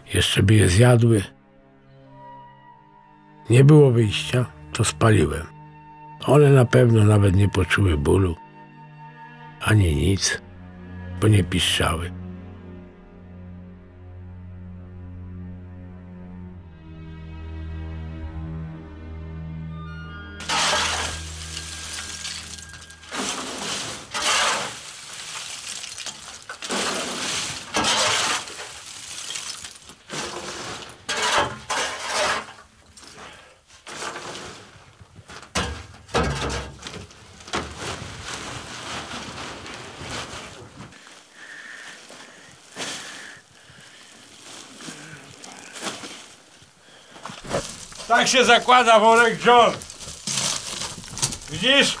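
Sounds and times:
shovel scraping charcoal: 20.4 - 52.0.

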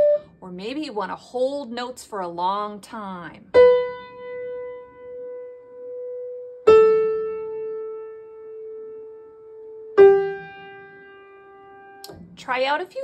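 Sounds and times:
piano single notes ringing: 0.0 - 0.4, 3.5 - 12.4.

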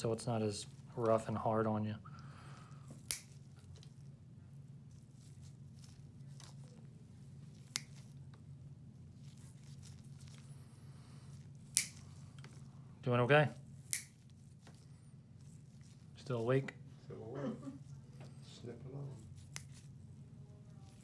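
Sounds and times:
low steady hum: 0.0 - 21.0
toenail nippers clicking: 3.0 - 3.3, 11.7 - 12.0, 13.9 - 14.1.

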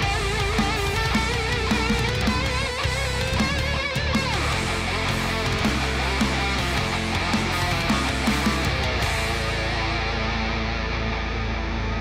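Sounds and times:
distorted lead guitar: 0.0 - 12.0
drums: 0.0 - 12.0
heavy guitar riffing: 0.0 - 12.0.

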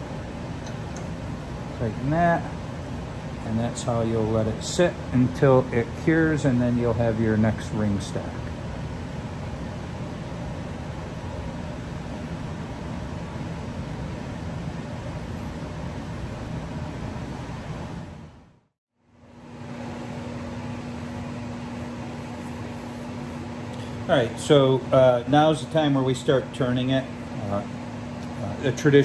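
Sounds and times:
steady machine noise: 0.0 - 29.0.

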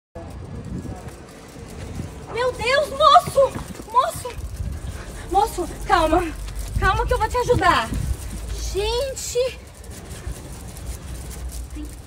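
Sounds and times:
low rumble of road traffic: 0.2 - 12.0.

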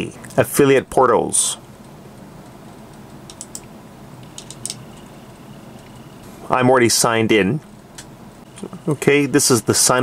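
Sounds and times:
computer mouse clicks: 2.4 - 4.8.

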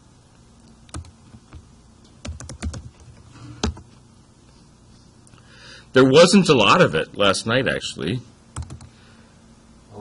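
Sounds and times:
computer keyboard typing: 0.9 - 1.2, 2.2 - 3.8, 8.6 - 8.9.

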